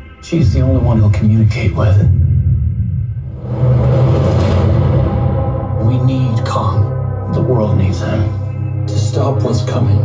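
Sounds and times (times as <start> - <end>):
sustained droning tones: 0.0 - 10.0
deep low rumble: 0.4 - 8.9
rushing rise: 2.1 - 7.0.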